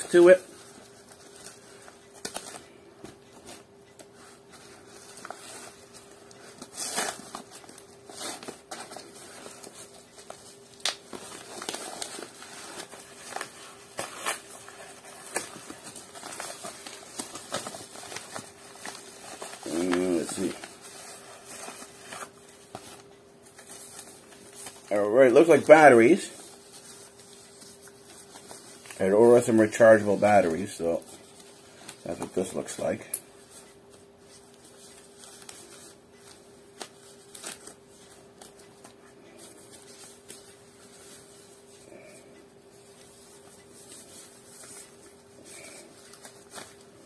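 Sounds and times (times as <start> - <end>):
faint steady hum: 0.0 - 47.0
plastic packaging crinkling: 3.4 - 33.7.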